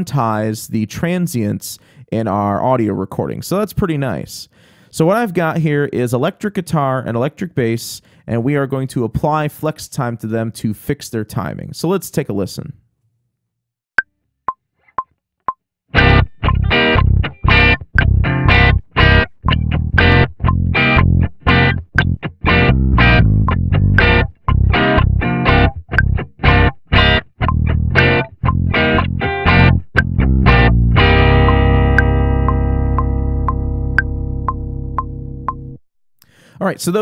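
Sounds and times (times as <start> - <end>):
metronome clicks: 16.0 - 35.6
electric bass: 16.0 - 35.8
overdriven electric guitar chords: 16.0 - 35.8.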